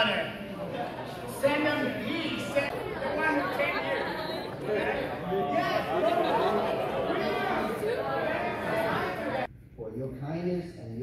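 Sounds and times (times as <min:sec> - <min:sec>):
many people talking in a hall: 0:00.0 - 0:11.0.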